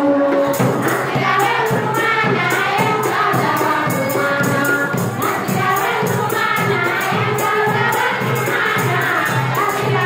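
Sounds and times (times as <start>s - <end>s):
percussion beat strikes: 0.0s - 10.0s
women singing together: 0.0s - 10.0s.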